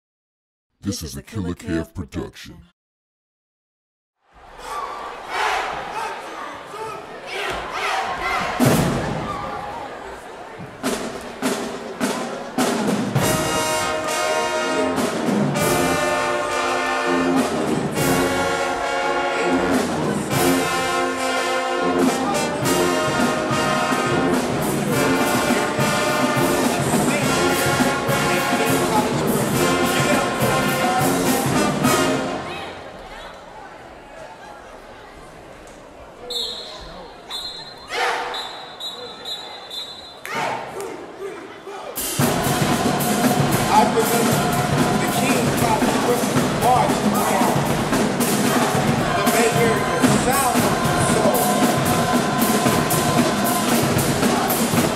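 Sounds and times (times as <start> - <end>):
marching band playing: 10.8 - 32.4, 42.0 - 54.9.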